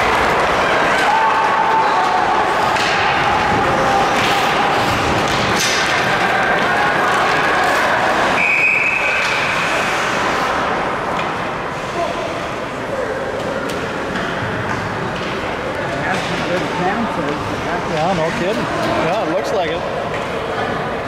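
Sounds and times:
skates sticks and puck knocking: 0.0 - 11.4
arena background noise: 0.0 - 21.0
referee's whistle: 8.4 - 9.4.

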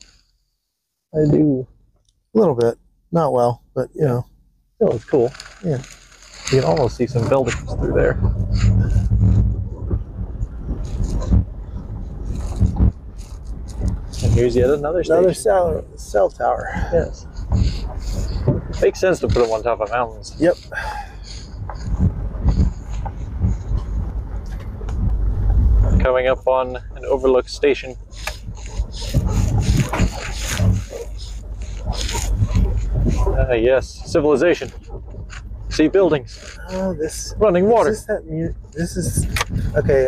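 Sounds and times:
car engine and tyre rumble: 4.8 - 40.0
knocks and rattles: 6.2 - 40.0.

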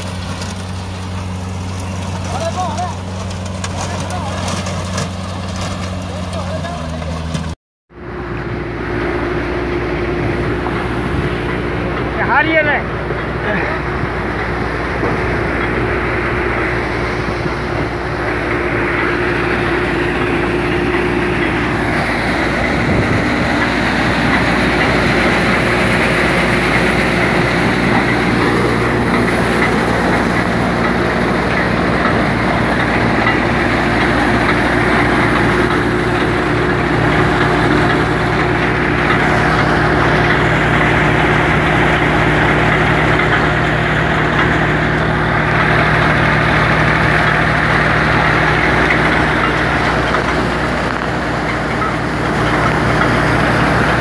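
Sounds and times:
implement mechanical noise: 0.0 - 54.0
tractor engine running: 0.0 - 54.0.

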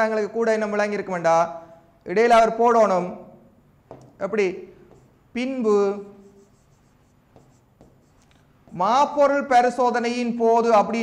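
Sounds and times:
pen tapping on tablet: 3.9 - 4.2, 4.9 - 5.2, 6.6 - 8.8
stylus scratching on tablet: 4.9 - 5.2, 5.8 - 9.3.

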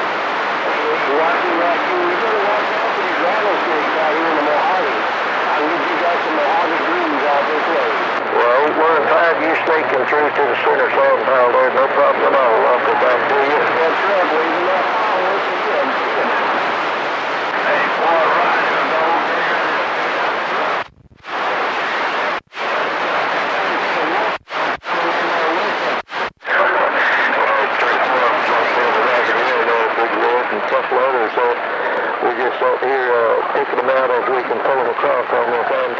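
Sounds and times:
heavy radio static: 0.0 - 35.9
unintelligible radio voices: 0.0 - 35.9.

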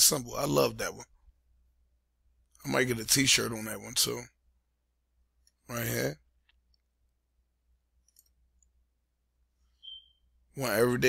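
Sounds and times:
short high beep: 9.8 - 10.3.

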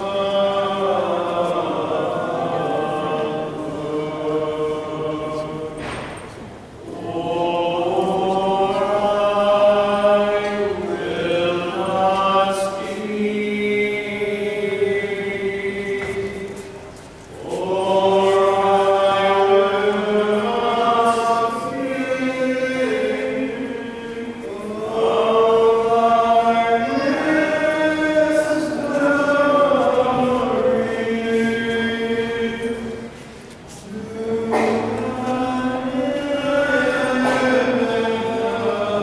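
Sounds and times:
choir chanting slow phrases: 0.0 - 39.0.

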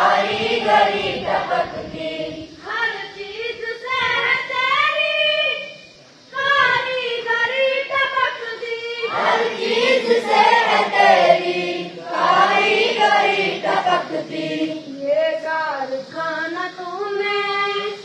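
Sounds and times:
boys chanting a prayer: 0.0 - 5.8, 6.4 - 18.0.

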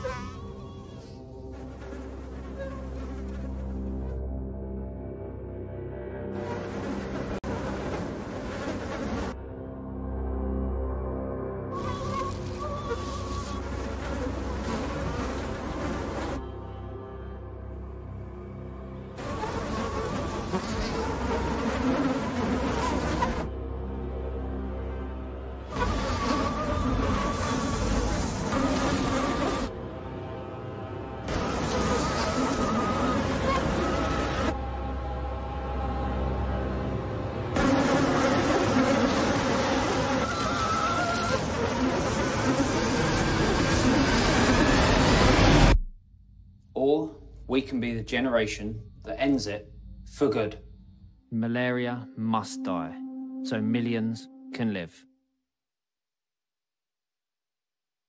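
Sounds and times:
low steady drone: 0.0 - 55.0.

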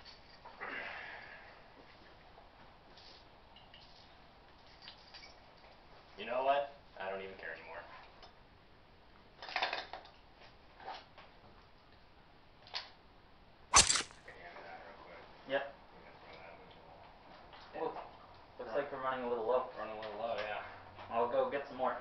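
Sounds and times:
sharp loud crack: 13.7 - 14.2.

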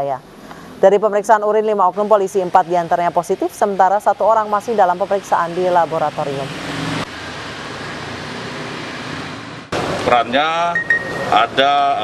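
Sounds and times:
outdoor hum and hiss: 0.0 - 6.0.

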